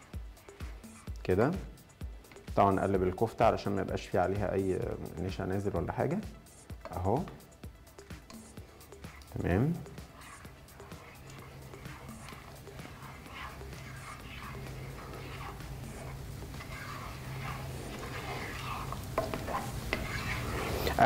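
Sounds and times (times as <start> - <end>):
spatula scraping a pot: 0.0 - 1.2, 8.0 - 21.0.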